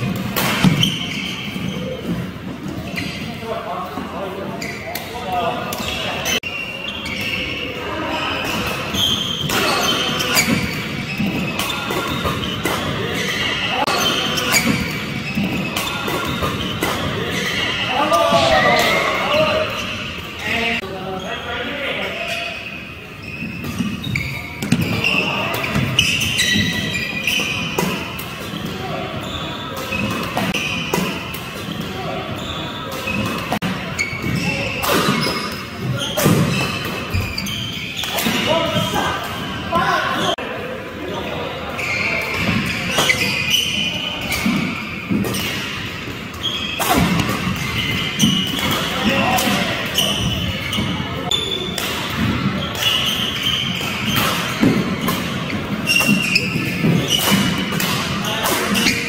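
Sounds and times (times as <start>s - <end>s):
badminton rackets hitting shuttlecock: 0.0s - 1.0s, 51.7s - 59.0s.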